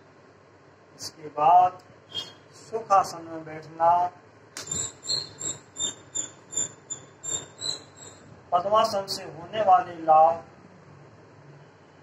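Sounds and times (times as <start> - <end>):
high-pitched chirping squeaks: 2.1 - 2.4, 4.6 - 9.0
sharp click: 4.6 - 4.9.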